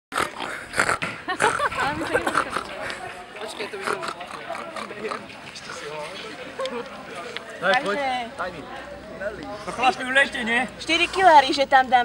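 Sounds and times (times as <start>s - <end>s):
young people talking: 1.3s - 12.0s.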